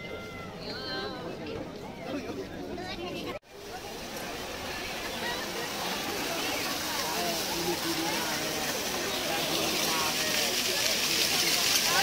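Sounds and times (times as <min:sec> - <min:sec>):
background chatter: 0:00.0 - 0:12.0
people's voices: 0:00.0 - 0:12.0.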